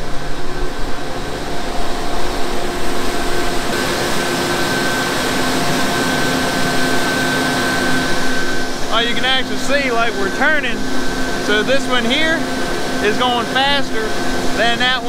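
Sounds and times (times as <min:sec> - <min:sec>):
faint machine hum: 0:00.0 - 0:15.0.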